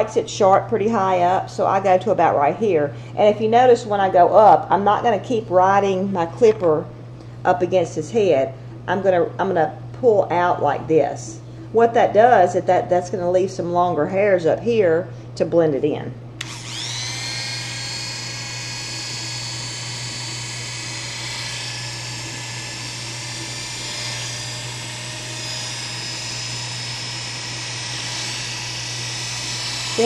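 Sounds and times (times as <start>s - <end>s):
electric hair clippers buzzing: 16.3s - 30.0s.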